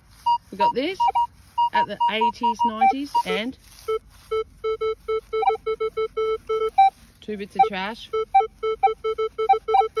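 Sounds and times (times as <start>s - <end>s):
metal detector beeping: 0.1s - 10.0s.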